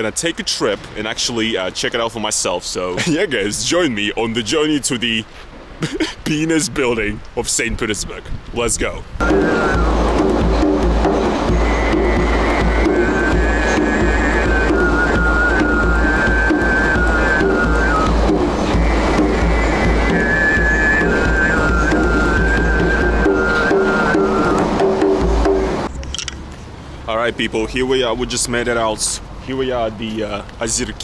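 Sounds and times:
hand drum beat: 0:09.2 - 0:25.9
low rumble: 0:09.2 - 0:26.0.

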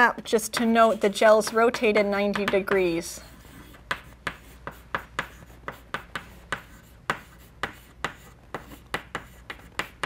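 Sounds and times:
chalk writing on a blackboard: 0:03.2 - 0:10.0.

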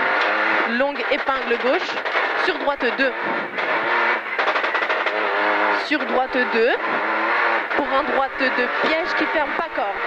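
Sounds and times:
car engine at high revs: 0:00.0 - 0:10.0.

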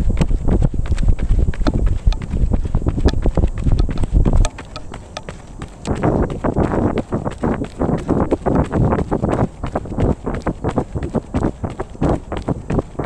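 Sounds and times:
running footsteps on asphalt: 0:00.0 - 0:13.0
wind buffeting microphone: 0:00.0 - 0:13.0.

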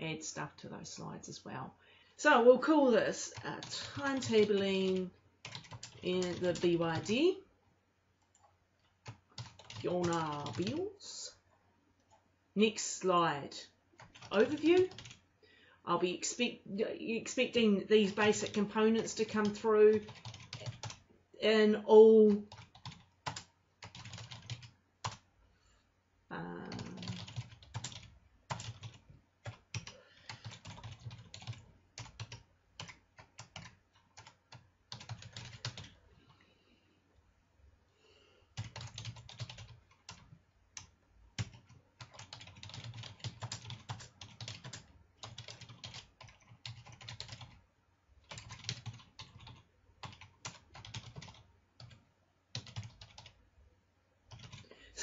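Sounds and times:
computer keyboard typing: 0:03.4 - 0:07.2, 0:08.2 - 0:10.8, 0:14.0 - 0:15.2, 0:18.1 - 0:21.0, 0:22.4 - 0:25.2, 0:26.6 - 0:36.0, 0:38.6 - 0:47.6, 0:48.2 - 0:53.4, 0:54.3 - 0:54.7.

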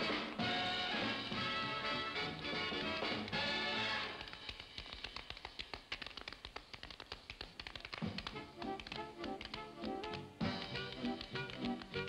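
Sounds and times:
tap shoes on stage floor: 0:00.0 - 0:12.0.

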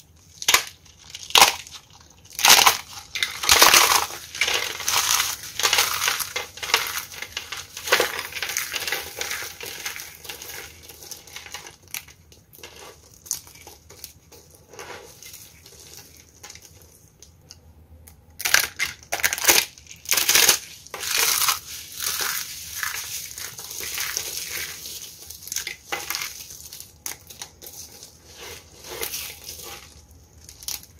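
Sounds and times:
soap flower crunching and crackling: 0:00.0 - 0:30.9.

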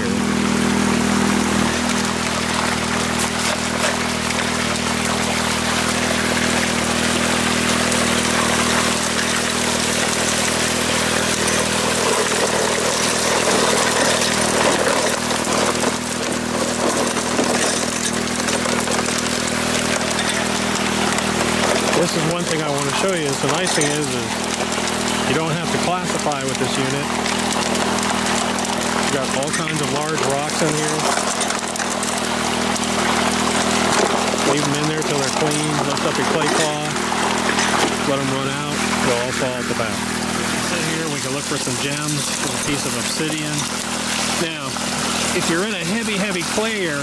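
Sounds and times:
engine humming: 0:00.0 - 0:47.0
water rushing through sluice: 0:00.0 - 0:47.0.

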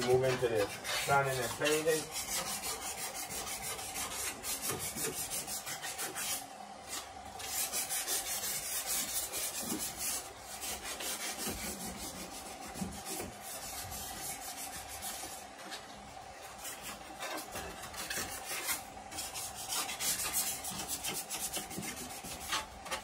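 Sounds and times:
sandpaper sanding metal panel: 0:00.0 - 0:15.8, 0:16.4 - 0:23.0.

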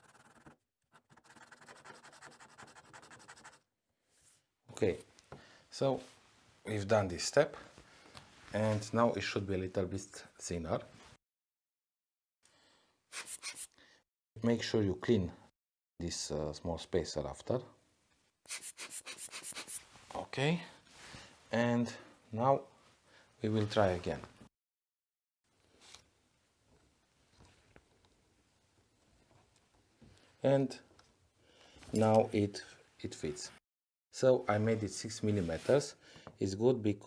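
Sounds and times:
sandpaper scratching: 0:00.0 - 0:03.6, 0:13.1 - 0:13.7, 0:18.5 - 0:19.9.

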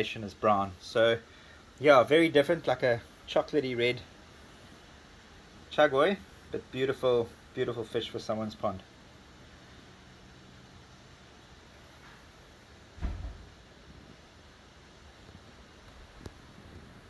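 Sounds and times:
background hiss: 0:00.0 - 0:17.0
dull thump: 0:13.0 - 0:13.5.

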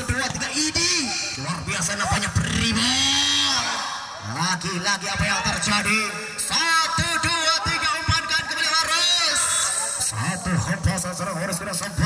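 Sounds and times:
voices shouting: 0:00.3 - 0:10.3.

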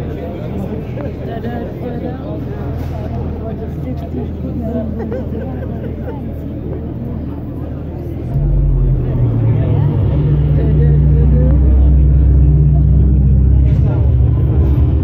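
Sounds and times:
crowd chatter: 0:00.0 - 0:15.0
deep loud low rumble: 0:08.3 - 0:15.0.

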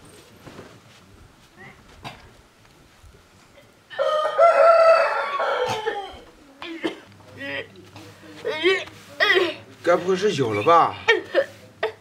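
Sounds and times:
rooster crowing: 0:03.9 - 0:06.3.

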